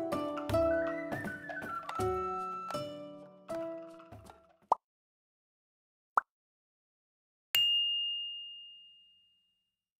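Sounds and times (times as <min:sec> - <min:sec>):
high bell-like notification ding: 0:07.6 - 0:09.5.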